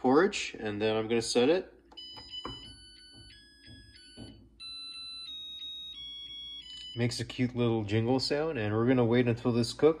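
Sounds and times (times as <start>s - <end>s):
rice cooker beeping jingle: 1.9s - 9.8s.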